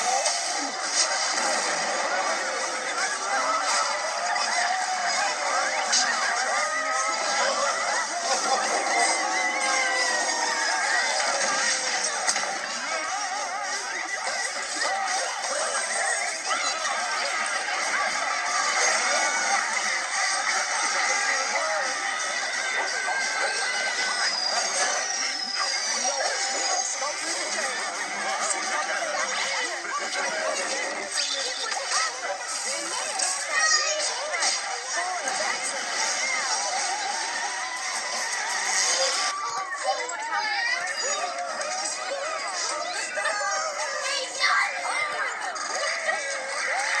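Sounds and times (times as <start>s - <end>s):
jumble of video soundtracks: 0.0s - 47.0s
overlapping tinny cries and calls: 0.0s - 47.0s.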